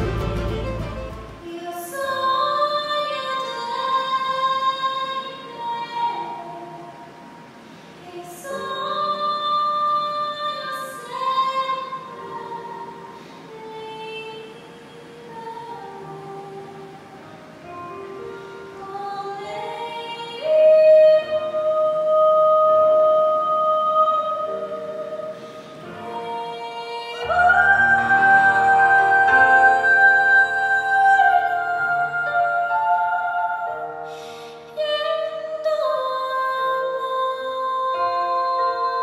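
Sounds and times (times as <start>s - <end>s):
piano chords ringing: 0.0s - 39.0s
person singing: 8.0s - 39.0s.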